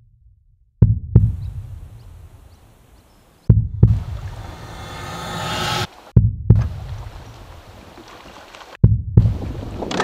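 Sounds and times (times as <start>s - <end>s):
heartbeat double thump: 0.8s - 1.5s, 3.5s - 4.5s, 6.2s - 6.9s, 8.8s - 9.4s
hiss: 4.2s - 5.9s.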